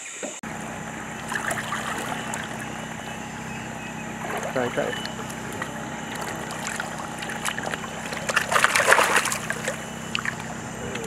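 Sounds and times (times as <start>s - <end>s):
river water splashing: 0.0s - 11.0s.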